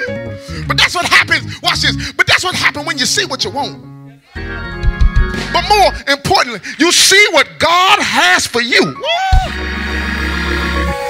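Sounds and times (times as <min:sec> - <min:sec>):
keyboard chord with deep bass: 0:02.8 - 0:06.1, 0:09.4 - 0:11.0.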